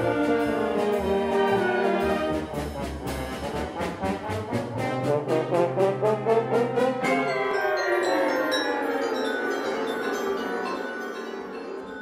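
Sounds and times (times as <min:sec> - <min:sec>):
concert band playing: 0:00.0 - 0:07.9.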